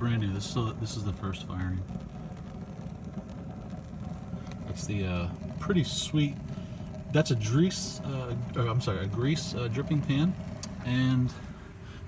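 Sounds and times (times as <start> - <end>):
gas grill flame rushing: 0.0 - 12.0.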